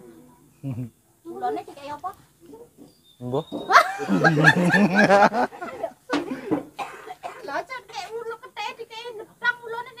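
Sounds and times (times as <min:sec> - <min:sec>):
conversation: 0:00.0 - 0:10.0
loud laughter: 0:03.7 - 0:06.0.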